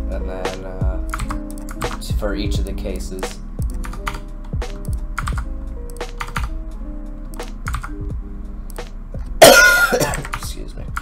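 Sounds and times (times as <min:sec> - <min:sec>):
background music of held notes: 0:00.0 - 0:11.0
computer keyboard clicking: 0:01.0 - 0:02.0, 0:03.6 - 0:06.6, 0:07.3 - 0:08.0, 0:10.1 - 0:11.0.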